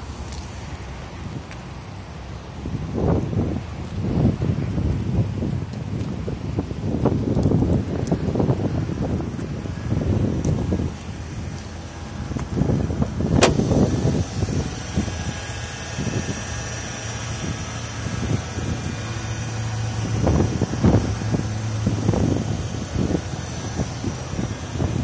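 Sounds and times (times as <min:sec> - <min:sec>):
car engine idling: 0:08.9 - 0:25.0
sharp click: 0:13.4 - 0:13.8.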